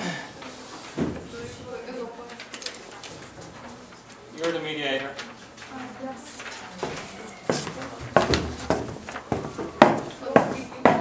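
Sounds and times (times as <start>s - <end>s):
faint murmured voices: 0.0s - 11.0s
paper rustling: 0.4s - 9.8s.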